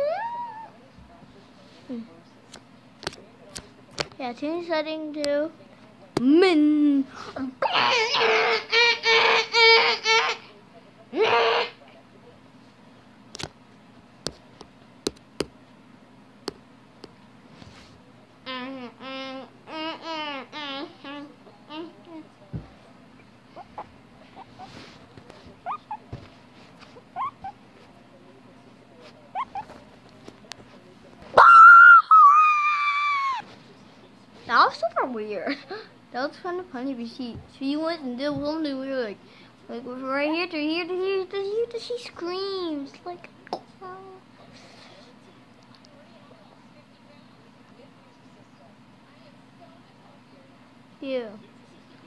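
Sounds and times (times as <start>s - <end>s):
guinea pig squealing: 7.6s - 10.5s, 11.1s - 11.8s, 23.6s - 24.8s, 25.6s - 26.1s, 26.9s - 27.7s, 29.3s - 29.8s, 31.4s - 33.5s
guinea pig squeaking: 23.6s - 24.8s, 25.6s - 26.1s, 26.8s - 27.7s, 29.3s - 29.8s.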